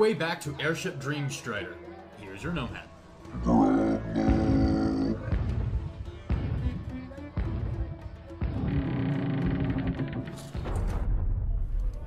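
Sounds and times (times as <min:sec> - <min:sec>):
deep voiced grunt: 0:03.3 - 0:05.4.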